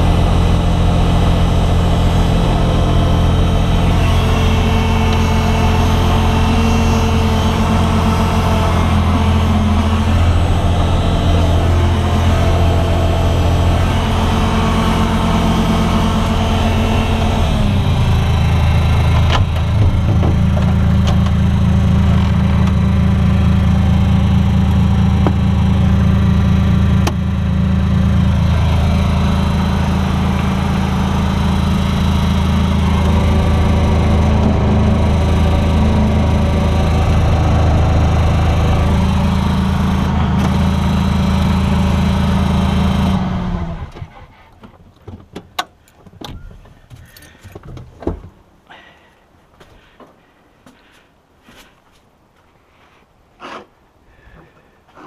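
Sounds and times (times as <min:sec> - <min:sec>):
loader engine running: 0:00.0 - 0:47.7.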